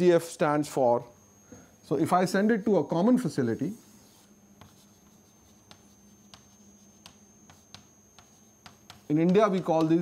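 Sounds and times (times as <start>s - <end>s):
chalk writing on blackboard: 3.6s - 10.0s
light chalk taps: 4.6s - 10.0s.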